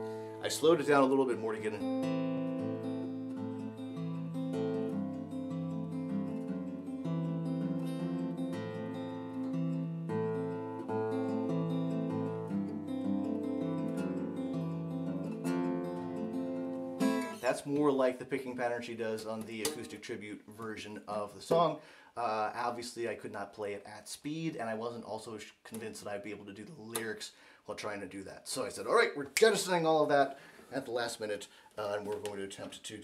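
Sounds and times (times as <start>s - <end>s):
fingerpicked acoustic guitar: 0.0s - 17.9s.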